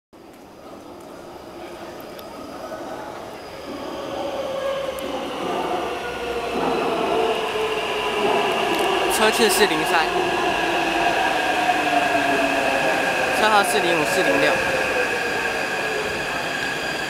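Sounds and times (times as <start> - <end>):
train running noise: 0.2 - 17.0
steady whining tones: 1.0 - 17.0.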